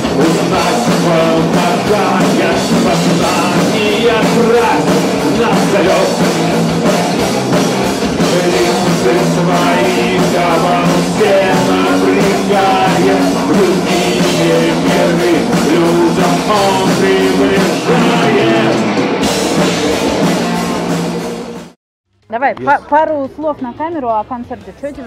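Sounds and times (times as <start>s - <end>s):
person singing: 0.0s - 6.4s, 8.2s - 19.1s
heavy metal band playing: 0.0s - 21.8s.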